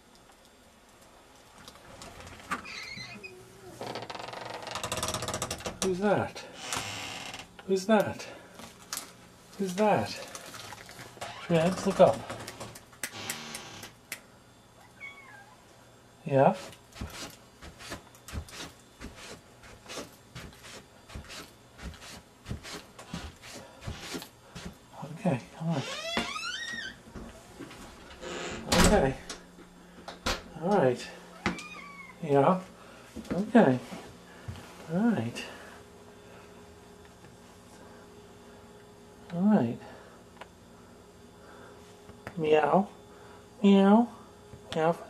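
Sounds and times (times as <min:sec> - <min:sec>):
door creaking: 0:02.0 - 0:06.0, 0:06.6 - 0:07.5, 0:11.2 - 0:14.0, 0:25.6 - 0:29.4, 0:31.3 - 0:32.2.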